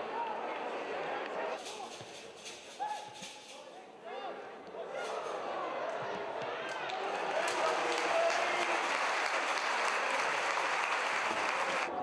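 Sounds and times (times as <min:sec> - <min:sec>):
stadium crowd applauding and cheering: 0:05.0 - 0:12.0.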